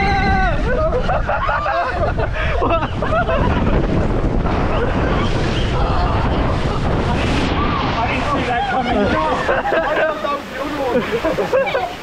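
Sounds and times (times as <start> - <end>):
people shrieking and exclaiming: 0.0 - 2.8, 4.5 - 12.0
rushing air and water: 0.0 - 12.0.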